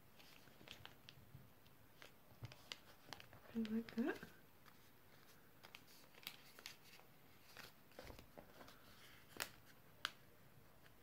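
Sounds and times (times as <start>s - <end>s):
paper rustling and crinkling: 0.1s - 1.2s, 1.9s - 10.2s.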